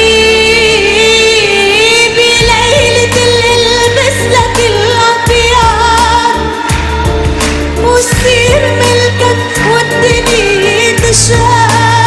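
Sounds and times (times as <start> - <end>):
woman singing: 0.0 - 12.0
band with bass and drums: 2.3 - 12.0.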